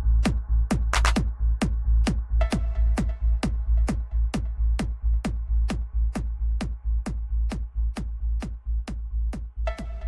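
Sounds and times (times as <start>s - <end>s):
deep bass line: 0.0s - 10.0s
kick drum: 0.0s - 10.0s.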